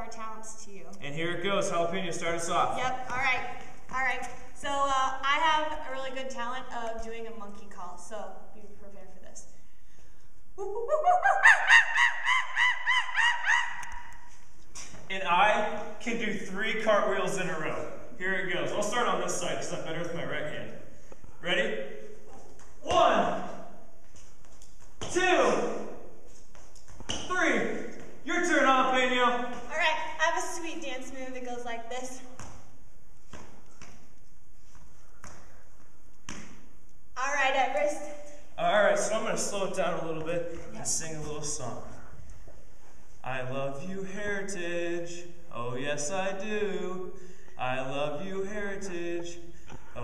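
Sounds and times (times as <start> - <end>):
room noise: 0.0 - 50.0
woman imitating monkey hoots: 10.6 - 14.1.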